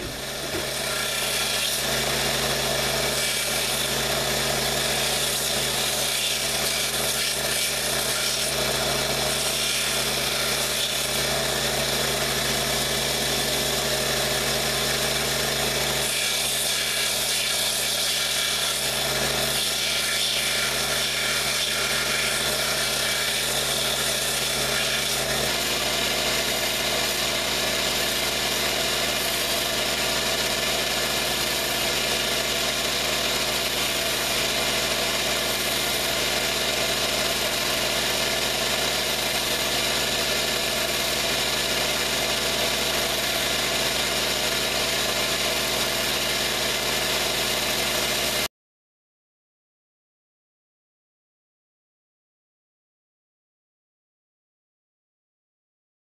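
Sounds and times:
belt sander sanding leather: 0.0s - 48.5s.

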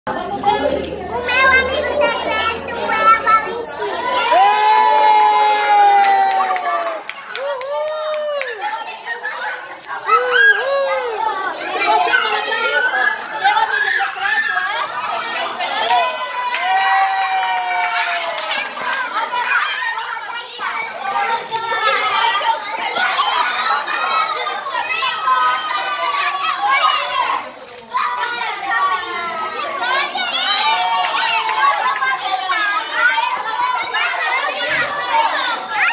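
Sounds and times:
people chattering and shouting: 0.0s - 35.9s.

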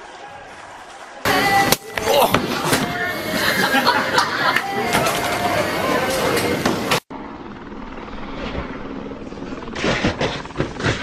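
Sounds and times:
outdoor noise: 0.0s - 11.0s
bowling alley din: 1.3s - 7.0s
voices: 1.3s - 7.0s.

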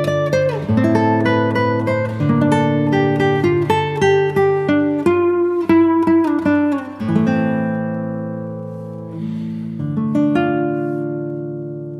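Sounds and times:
acoustic guitar music: 0.0s - 11.9s.

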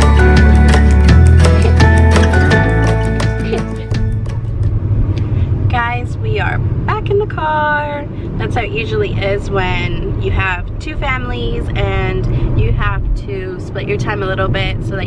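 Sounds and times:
car engine and road rumble: 0.0s - 15.0s
woman talking: 3.4s - 4.0s, 5.6s - 15.0s.

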